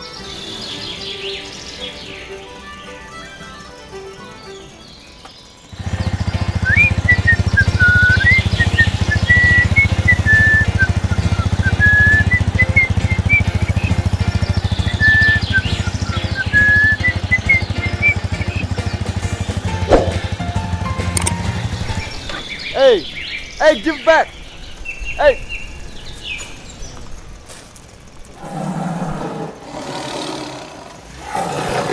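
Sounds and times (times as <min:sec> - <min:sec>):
whistled tune: 0:00.0 - 0:20.4
motorcycle engine running: 0:05.3 - 0:31.8.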